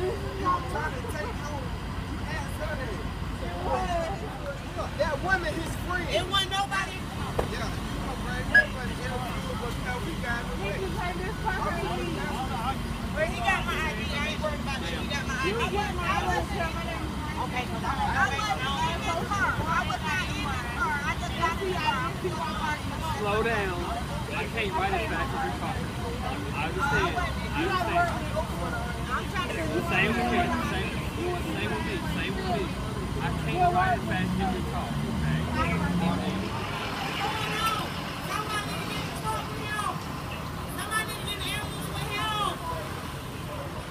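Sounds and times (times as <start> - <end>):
indistinct talk of people: 0.0 - 43.9
vehicles idling low rumble: 0.0 - 43.9.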